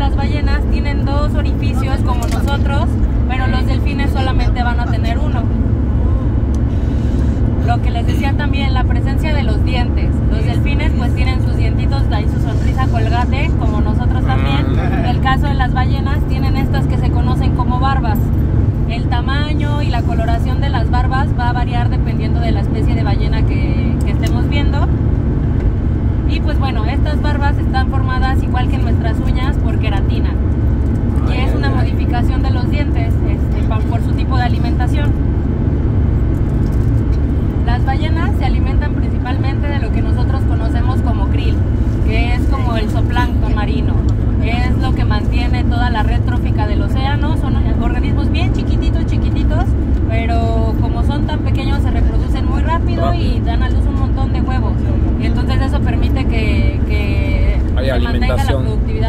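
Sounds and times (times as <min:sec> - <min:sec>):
woman talking: 0:00.0 - 0:05.8, 0:07.6 - 0:25.0, 0:26.2 - 0:30.4, 0:31.2 - 0:35.2, 0:37.6 - 0:59.0
vehicle road and engine rumble: 0:00.0 - 0:59.0.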